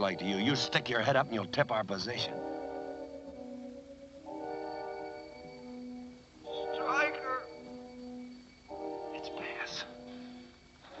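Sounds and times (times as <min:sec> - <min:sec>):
low sustained orchestral chords: 0:00.0 - 0:11.0.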